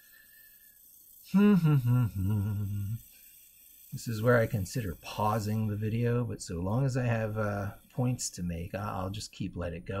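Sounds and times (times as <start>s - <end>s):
room hiss: 0.0s - 10.0s
man humming wordless vocal: 1.3s - 3.1s.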